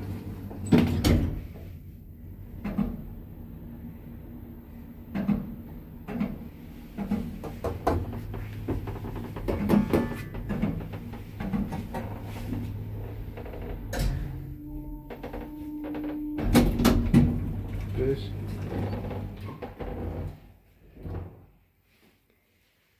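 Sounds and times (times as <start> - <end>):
lift drive humming: 0.0 - 20.4
sliding doors opening rush: 0.0 - 21.5
lift car clicks and knocks: 5.1 - 12.4, 15.1 - 18.0
lift arrival tone: 9.6 - 20.2.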